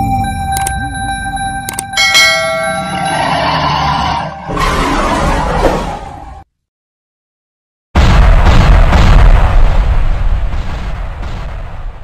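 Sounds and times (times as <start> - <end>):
notification bell chime: 0.0 - 3.7.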